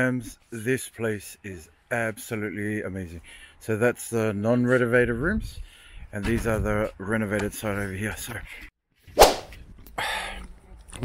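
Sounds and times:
sharp falling swish: 9.2s - 9.6s.

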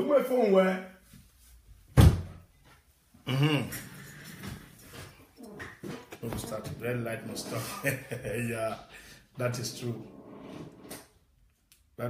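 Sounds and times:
door shutting thud: 2.0s - 2.4s.

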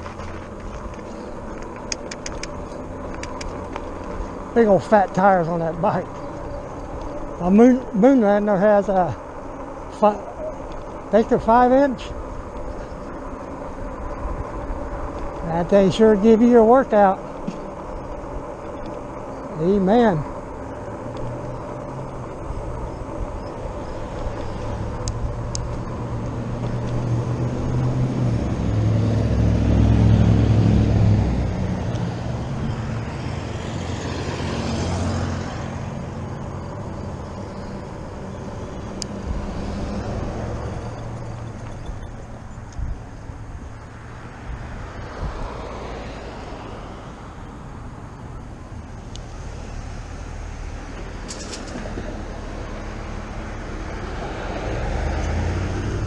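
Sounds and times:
road traffic: 0.0s - 56.0s
tyre noise on pavement: 0.0s - 56.0s
wind rumbling on camera: 0.0s - 56.0s.

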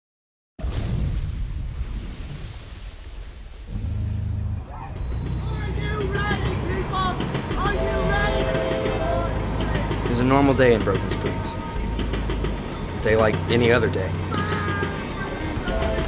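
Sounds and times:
noisy rush: 3.6s - 16.0s
sliding pitched tones: 3.7s - 16.0s
steady low drone: 3.7s - 16.0s.

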